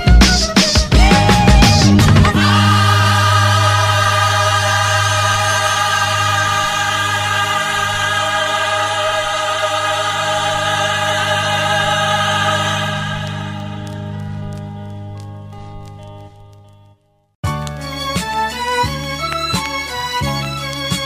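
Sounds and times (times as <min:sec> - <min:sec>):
choir singing held chords: 0:00.9 - 0:14.9
low bass note: 0:01.1 - 0:16.9.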